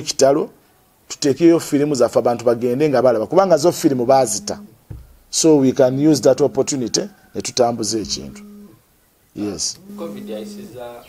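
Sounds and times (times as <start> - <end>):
man speaking: 1.1 - 4.7, 5.3 - 8.4, 9.4 - 11.0.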